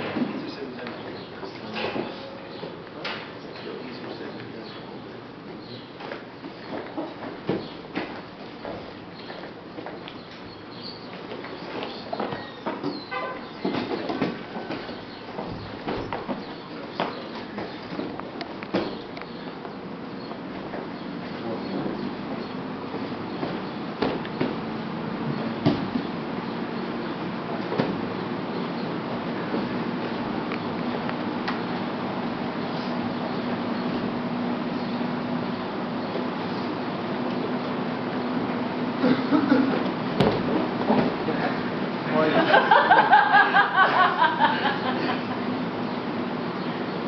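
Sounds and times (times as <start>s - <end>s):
fan hum: 0.0s - 47.0s
bodies thumping on gym mats: 6.0s - 9.3s, 11.1s - 19.2s, 21.9s - 28.3s, 39.6s - 41.4s.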